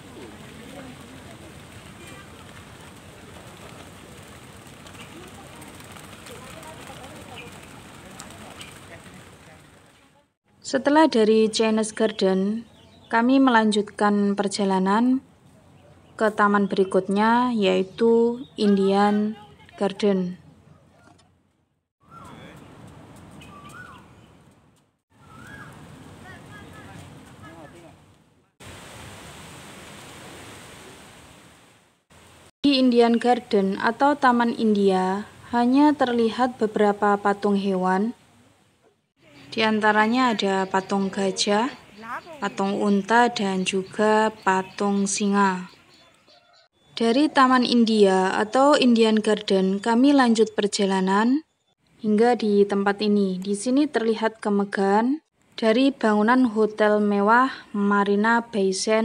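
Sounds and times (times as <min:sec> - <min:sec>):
fountain splashing into pond: 0:28.6 - 0:32.3.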